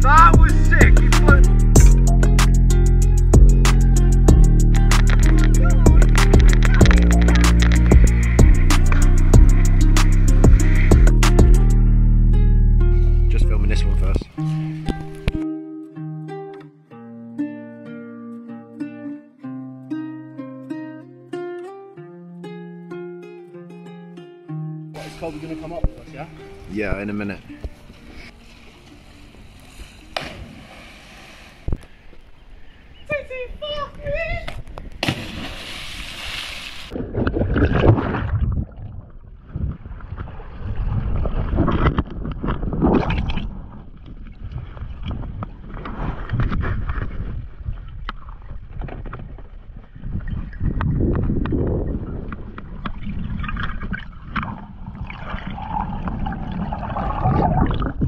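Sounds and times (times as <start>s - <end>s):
splash into water: 30.0s - 31.7s, 35.0s - 38.9s
water gurgling and sloshing: 35.0s - 58.0s.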